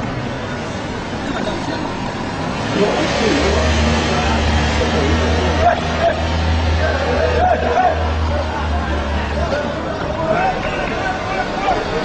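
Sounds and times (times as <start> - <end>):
truck engine running: 0.0 - 12.0.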